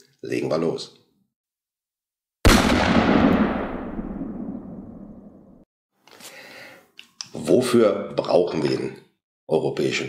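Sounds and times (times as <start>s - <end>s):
boom impact with rumbling tail: 2.5s - 5.6s.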